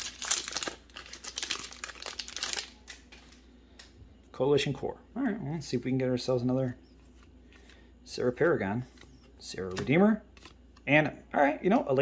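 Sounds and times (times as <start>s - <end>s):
foil wrapper crinkling: 0.0s - 3.4s.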